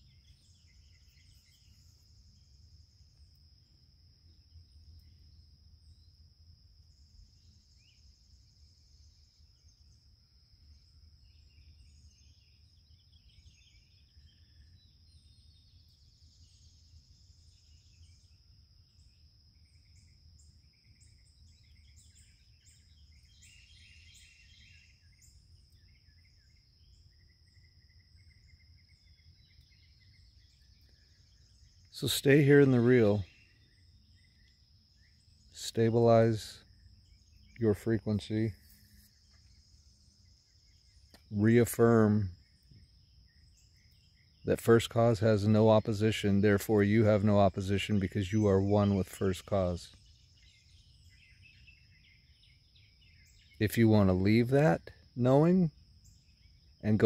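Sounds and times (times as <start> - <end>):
bird chirps: 0.0 - 57.0.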